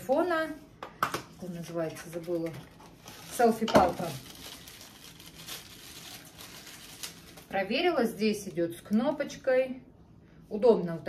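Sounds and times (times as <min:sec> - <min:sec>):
wrapping crinkling and rustling: 0:01.4 - 0:09.4.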